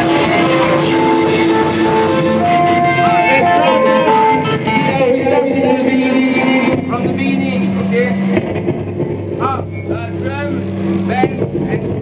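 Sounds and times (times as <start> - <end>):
electric guitar notes: 0.0 - 12.0
electric keyboard notes: 0.0 - 12.0
people talking: 4.8 - 8.4, 9.4 - 12.0.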